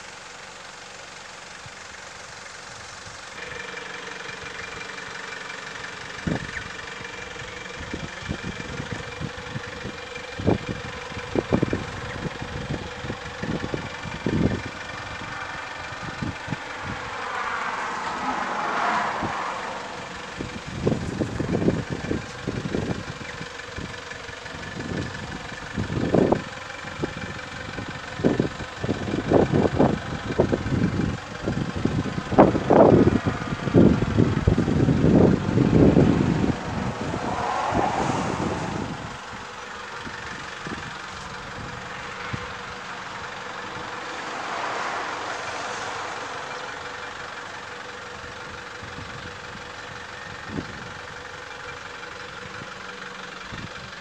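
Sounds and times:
steady engine-like hum: 0.0s - 54.0s
wind buffeting microphone: 6.2s - 17.2s, 19.1s - 44.0s, 48.1s - 51.3s.

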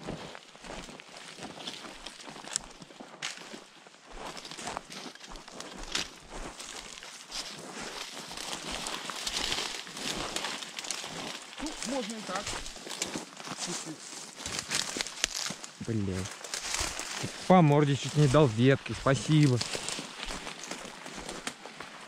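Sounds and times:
footsteps on dry twigs: 0.0s - 22.0s
sticks snapping underfoot: 2.4s - 3.4s, 8.5s - 13.6s, 14.4s - 15.8s, 19.6s - 21.6s
branches brushing clothing: 4.4s - 22.0s.

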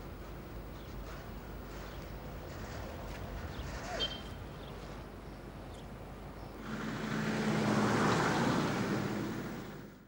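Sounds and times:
vehicle passing by: 6.6s - 10.0s.

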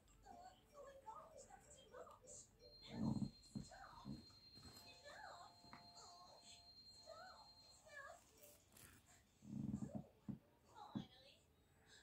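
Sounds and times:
faint high-pitched voices: 0.0s - 12.0s.

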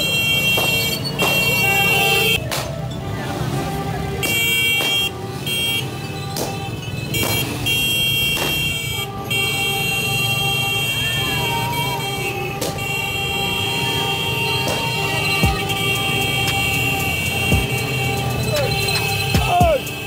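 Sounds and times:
horn blasts: 0.0s - 20.0s
small motorcycles running: 12.8s - 20.0s.

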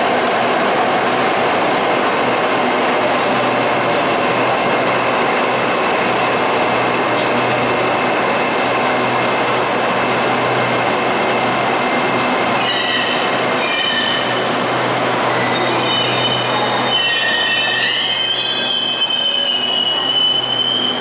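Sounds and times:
train rumbling: 0.0s - 21.0s
train brakes squealing: 12.6s - 14.4s, 15.3s - 21.0s.

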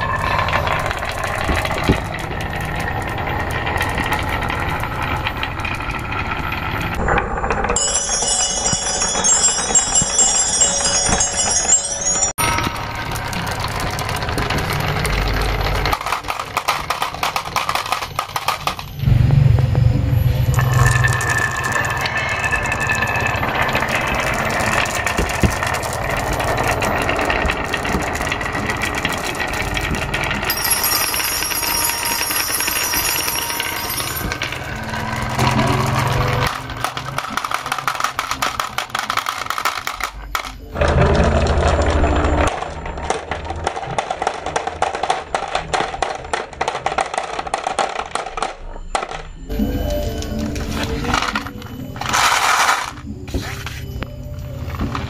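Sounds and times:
marbles clicking together: 0.0s - 11.7s, 12.4s - 19.0s, 20.4s - 53.1s
marbles rolling on wooden tracks: 0.0s - 55.0s.

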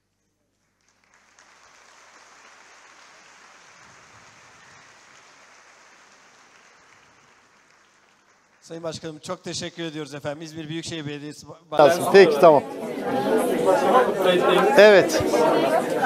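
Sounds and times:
audience applauding: 0.7s - 8.8s, 11.8s - 16.0s.

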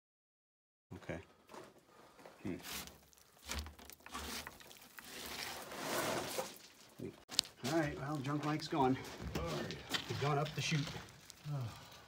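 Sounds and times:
scraping against wooden planks: 1.5s - 6.9s.

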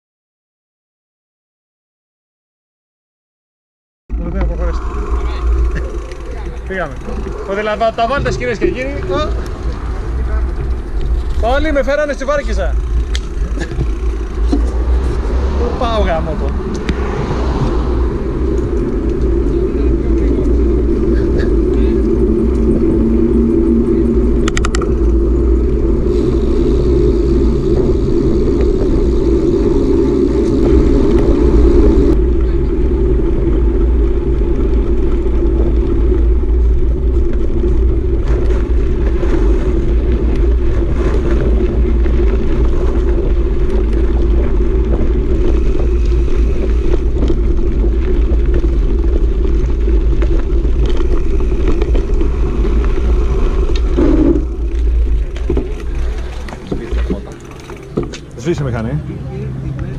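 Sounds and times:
bicycle tyres rumbling on road: 4.1s - 59.9s
wind rushing over microphone: 4.1s - 59.9s.

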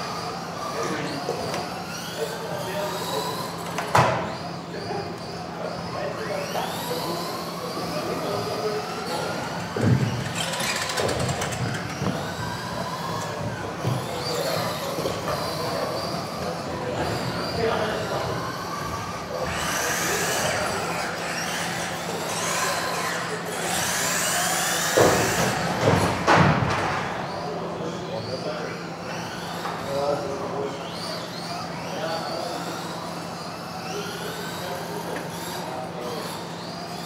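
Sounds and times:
electric toy car motors whining: 0.0s - 37.0s
voices in a hall: 0.0s - 37.0s.

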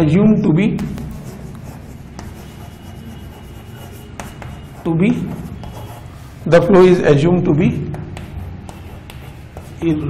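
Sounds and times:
steady low hum: 0.8s - 6.6s
chalk scratching on chalkboard: 0.8s - 6.8s, 7.9s - 10.0s.

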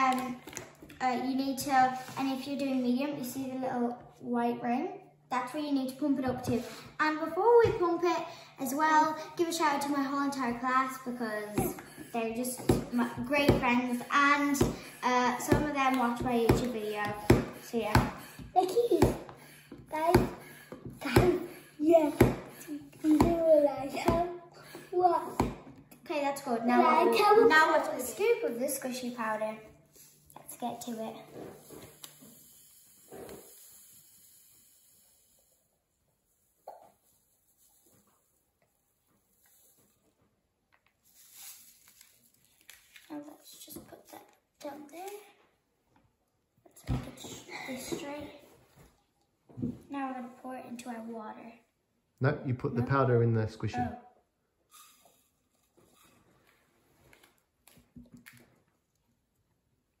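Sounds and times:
plastic scoop and bag rustling: 41.0s - 43.5s.

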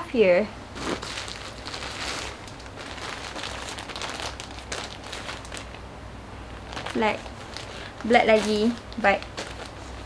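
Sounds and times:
plastic bag crinkling: 0.8s - 5.8s, 6.5s - 10.0s.

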